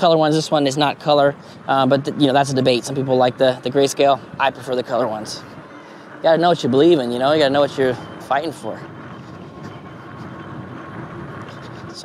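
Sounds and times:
bike tires rolling on dirt: 0:00.0 - 0:12.0.

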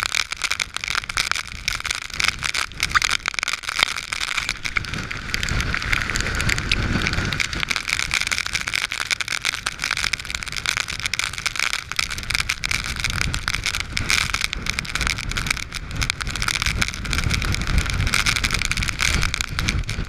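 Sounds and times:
rain spattering: 0:00.0 - 0:20.0
wind buffeting microphone: 0:04.5 - 0:20.0.

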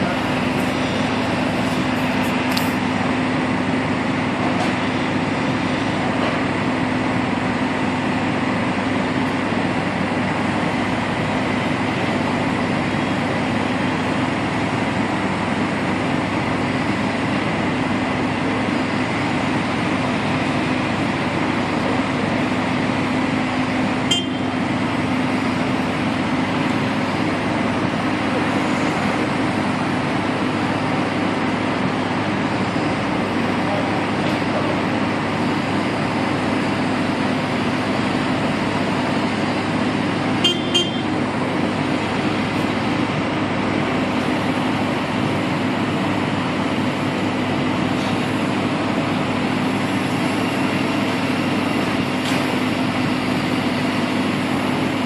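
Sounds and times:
diesel engine droning: 0:00.0 - 0:55.0.

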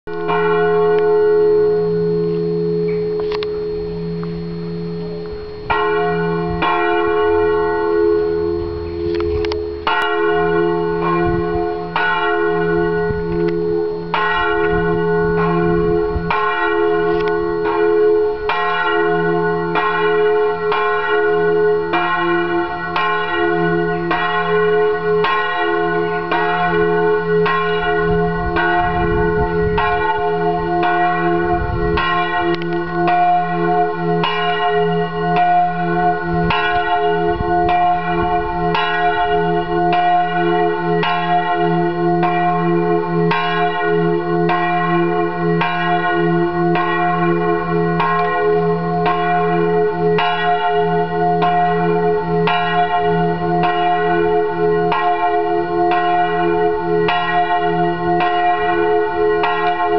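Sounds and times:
church bell ringing: 0:00.1 - 0:59.9.

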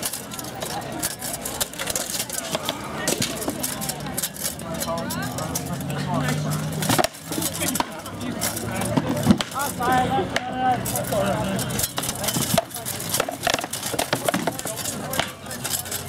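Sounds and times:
chatter of voices: 0:00.0 - 0:16.0
swords striking shields and helmets: 0:00.0 - 0:16.0.

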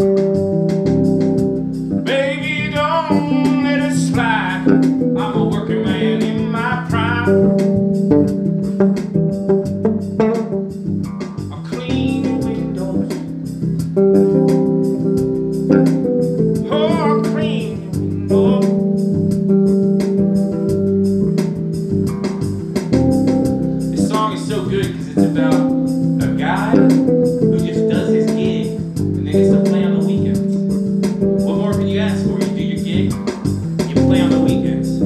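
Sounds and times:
electric bass: 0:00.0 - 0:35.0.

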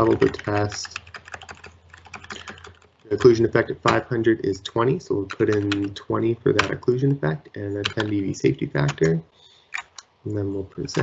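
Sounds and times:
typing on computer keyboard: 0:00.0 - 0:04.1, 0:05.3 - 0:06.0, 0:07.8 - 0:08.2, 0:09.7 - 0:10.1.

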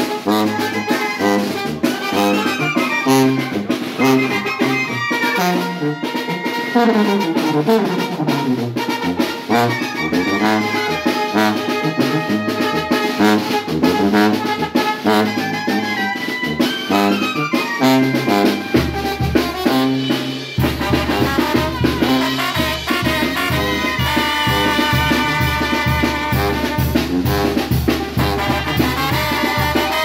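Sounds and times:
brass band playing: 0:00.0 - 0:30.0.

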